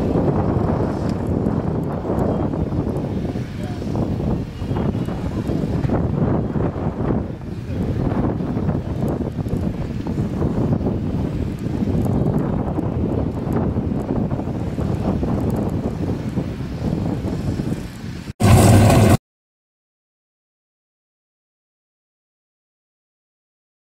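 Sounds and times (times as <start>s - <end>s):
wind buffeting microphone: 0.0s - 19.2s
car engine blast: 18.4s - 19.2s.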